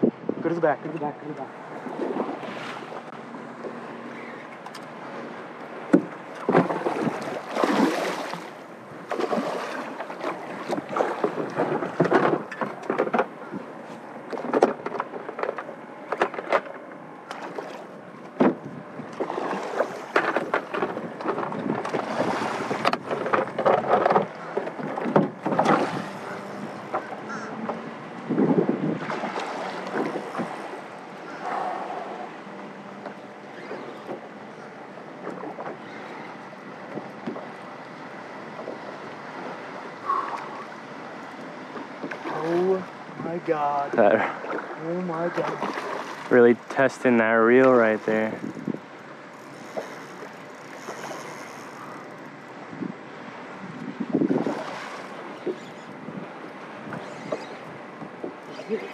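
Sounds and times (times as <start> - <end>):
knocks and scuffs on boat: 1.8 - 32.3, 32.9 - 40.6, 53.6 - 58.9
wind on microphone: 28.1 - 29.4, 48.3 - 48.8, 53.6 - 54.9.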